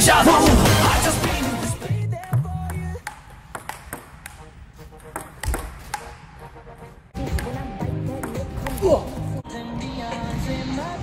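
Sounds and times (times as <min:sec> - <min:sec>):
table tennis ball clicking: 0:02.2 - 0:06.2.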